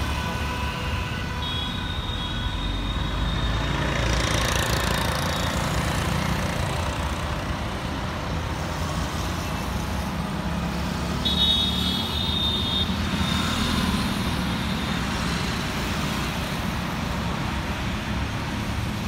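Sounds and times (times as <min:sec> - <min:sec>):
passing cars and motorcycles: 0:00.0 - 0:19.0.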